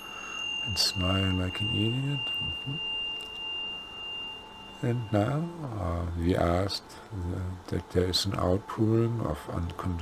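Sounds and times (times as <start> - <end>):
faint hiss: 0.0 - 9.8
high-pitched pure tone: 0.0 - 10.0.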